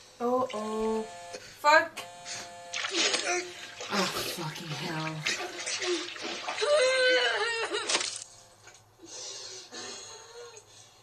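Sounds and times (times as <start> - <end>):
bath water splashing: 2.7 - 8.2.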